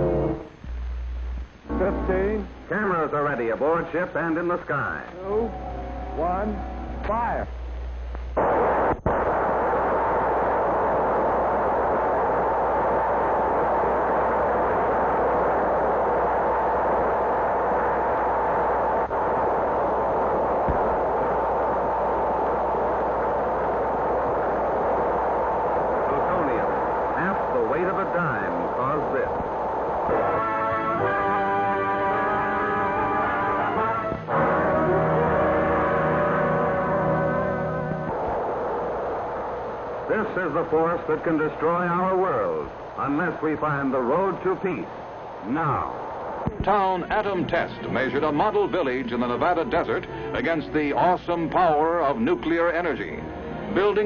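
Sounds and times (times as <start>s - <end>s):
low drone: 5.2s - 7.6s, 9.2s - 40.2s.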